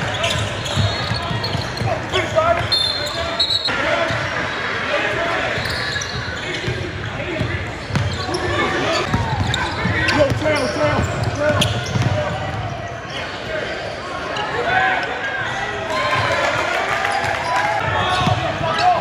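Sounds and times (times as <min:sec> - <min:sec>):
shoe squeak: 0:00.0 - 0:03.7, 0:05.5 - 0:06.8, 0:07.8 - 0:12.1
people talking and calling out: 0:00.0 - 0:19.0.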